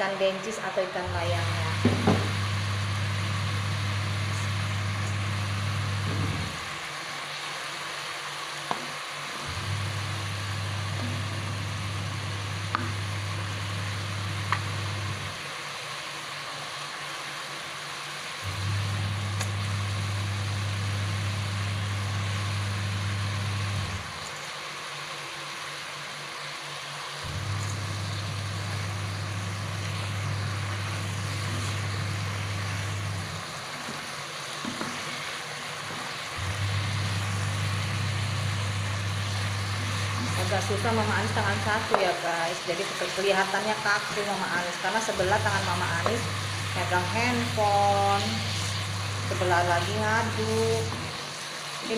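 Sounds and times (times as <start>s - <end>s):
sambal sizzling in a wok: 0.0s - 51.9s.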